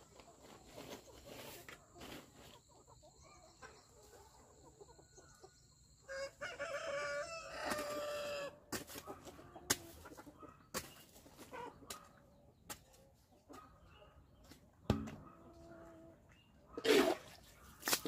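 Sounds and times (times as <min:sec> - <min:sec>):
rooster crowing: 0:06.1 - 0:08.5
hoe chopping into dirt: 0:14.9 - 0:15.3.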